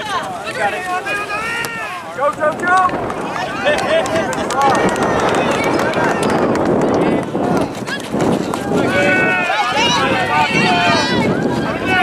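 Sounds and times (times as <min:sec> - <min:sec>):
people shouting on a field: 0:00.0 - 0:07.2, 0:08.5 - 0:12.0.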